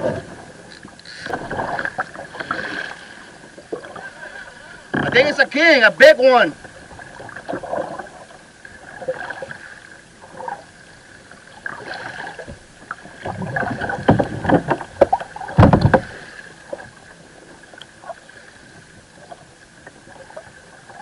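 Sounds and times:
water slapping against hull: 0:00.0 - 0:21.0
knocks and thuds: 0:15.6 - 0:16.1.

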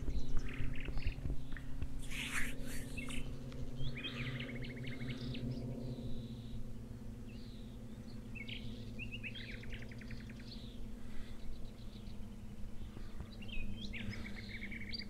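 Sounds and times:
songbird chirps and trills: 0:00.0 - 0:15.0
steady low hum: 0:00.0 - 0:15.0.

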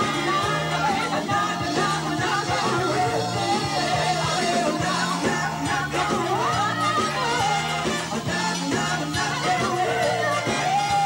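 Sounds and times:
drums: 0:00.0 - 0:11.0
rock band with horns: 0:00.0 - 0:11.0.

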